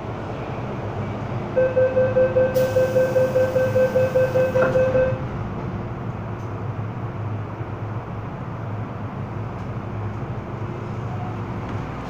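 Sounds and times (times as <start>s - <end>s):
train car hum: 0.0s - 12.0s
rapid door warning beeps: 1.6s - 5.2s
train doors knocking shut: 4.3s - 5.2s.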